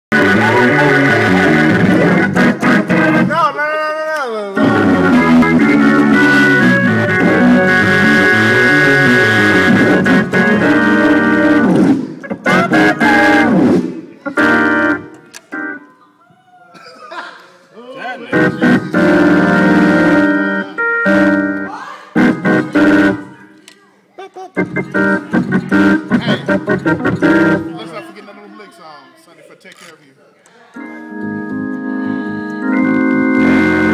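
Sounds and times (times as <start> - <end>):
electric organ gospel chords: 0.1 - 3.6, 4.5 - 16.0, 18.2 - 23.5, 24.5 - 28.0, 30.8 - 33.9.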